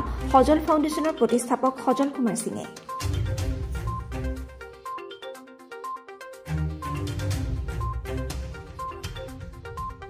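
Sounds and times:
electronic ident music: 0:02.8 - 0:10.0.

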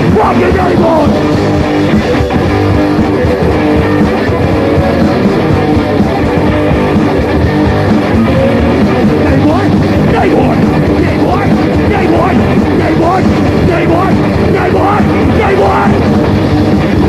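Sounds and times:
electric guitar: 0:00.0 - 0:17.0
punk rock band playing: 0:00.0 - 0:17.0.

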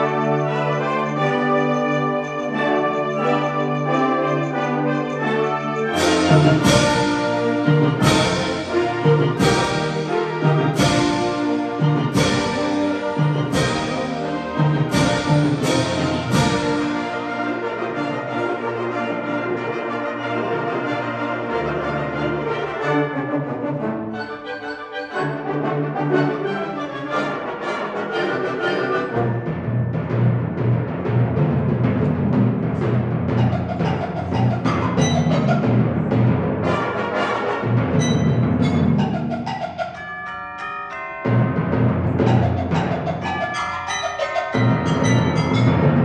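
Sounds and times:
loud percussion strikes: 0:06.0 - 0:18.1, 0:29.4 - 0:37.0, 0:37.6 - 0:40.0, 0:41.2 - 0:46.0
concert band chords: 0:06.0 - 0:18.2.

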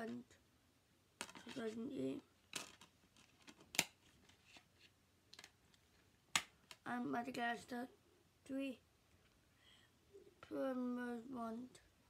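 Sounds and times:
plastic cases clicking and rustling: 0:02.5 - 0:04.4.

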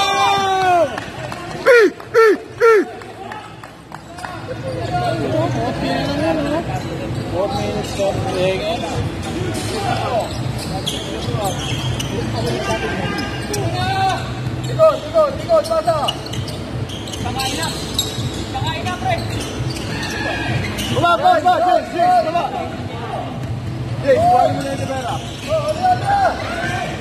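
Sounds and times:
people shouting: 0:01.7 - 0:03.0.

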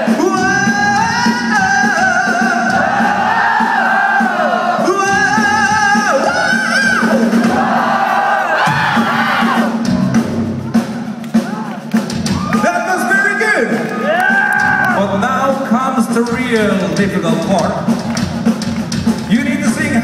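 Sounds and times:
crowd shouting and cheering: 0:00.0 - 0:20.0
live metal band music: 0:00.0 - 0:20.0
audience singing along: 0:02.3 - 0:04.9, 0:07.1 - 0:09.6.

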